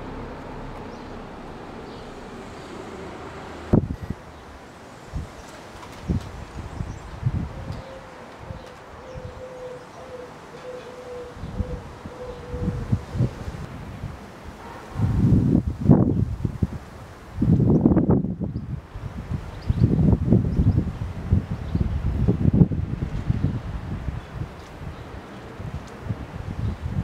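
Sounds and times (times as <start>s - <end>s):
wind buffeting microphone: 0.0s - 27.0s.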